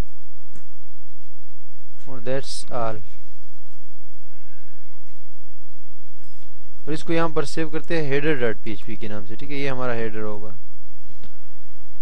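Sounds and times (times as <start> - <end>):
low electrical hum and hiss: 0.0 - 12.0.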